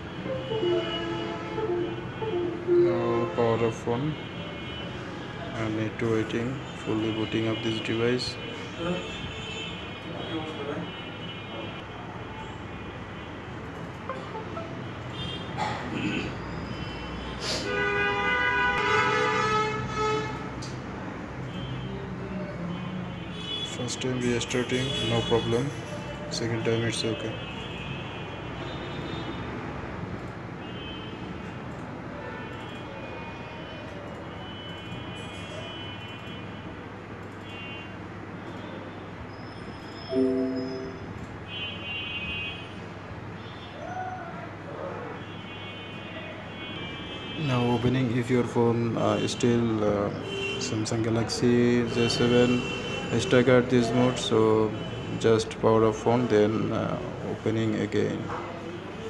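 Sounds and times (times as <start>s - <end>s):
startup chime: 0.3s - 3.2s, 40.1s - 41.2s
faint high tones: 40.1s - 41.2s
phone startup sweep: 40.1s - 41.2s.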